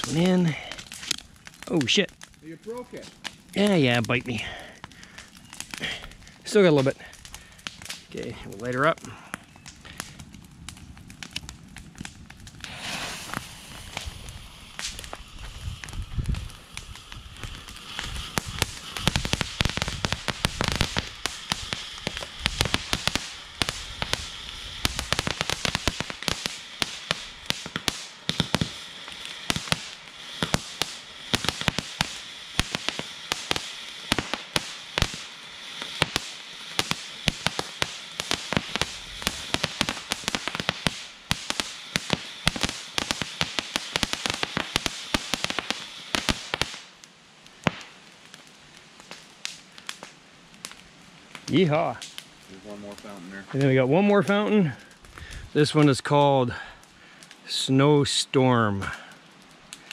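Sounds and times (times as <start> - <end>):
firework hissing and crackling: 0.0 - 59.9.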